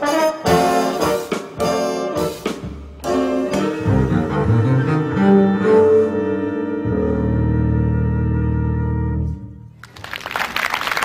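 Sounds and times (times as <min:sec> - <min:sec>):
jazz big band final chord: 0:00.0 - 0:09.5.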